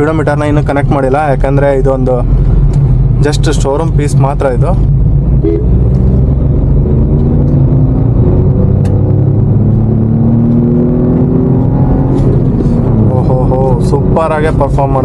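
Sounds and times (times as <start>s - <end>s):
car engine accelerating: 0.0s - 15.0s
low road rumble: 0.0s - 15.0s.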